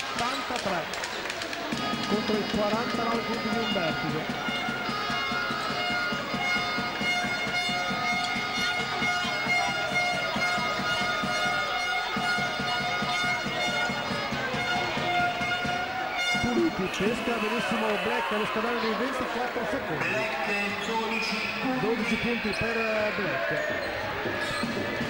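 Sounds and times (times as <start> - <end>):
crowd voices: 0.0 - 25.0
music playing: 1.7 - 25.0.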